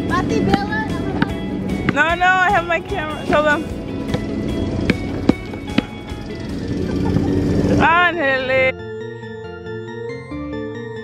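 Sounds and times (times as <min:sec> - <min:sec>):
basketball bouncing on asphalt: 0:00.0 - 0:07.3.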